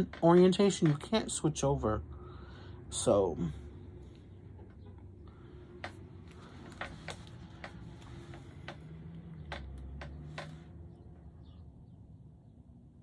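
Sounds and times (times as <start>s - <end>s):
low handling rumble: 0.0s - 13.0s.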